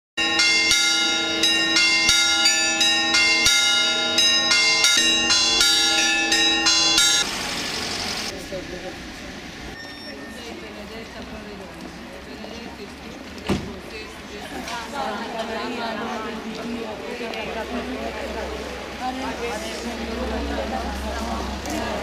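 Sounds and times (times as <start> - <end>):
church bells pealing: 0.2 - 8.3.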